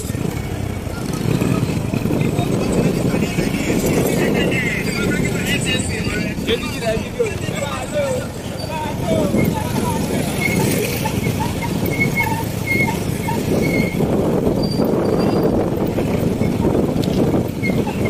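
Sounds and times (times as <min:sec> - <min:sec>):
indistinct voices: 0:00.0 - 0:18.0
motorcycle engine rumble: 0:00.0 - 0:18.0.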